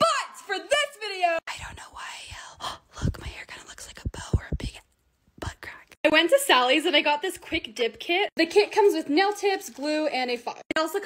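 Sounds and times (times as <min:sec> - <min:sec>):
person whispering: 0:01.5 - 0:06.0.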